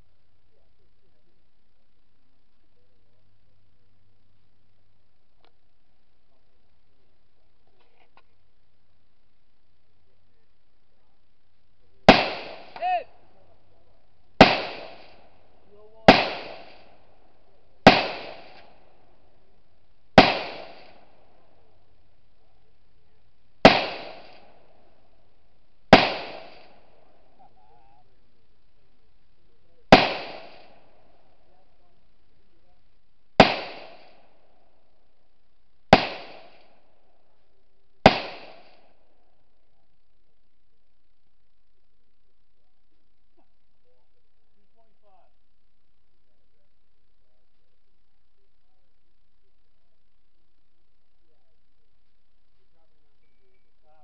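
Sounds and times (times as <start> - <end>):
rifle shots echoing: 12.1 - 13.2, 14.4 - 19.3, 20.2 - 21.9, 23.6 - 25.1, 25.9 - 27.4, 29.9 - 31.4, 33.4 - 34.6, 35.9 - 37.2, 38.0 - 39.0.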